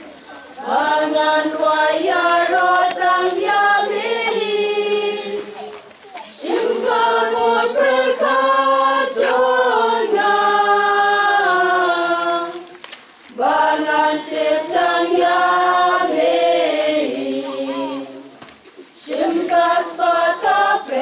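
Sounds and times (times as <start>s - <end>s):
choir singing a hymn: 0.5s - 5.6s, 6.4s - 12.6s, 13.4s - 18.3s, 19.0s - 21.0s.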